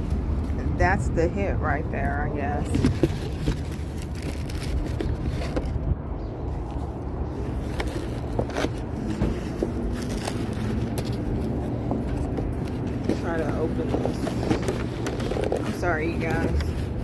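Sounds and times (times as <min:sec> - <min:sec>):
paper bag crinkling: 0:02.8 - 0:05.8.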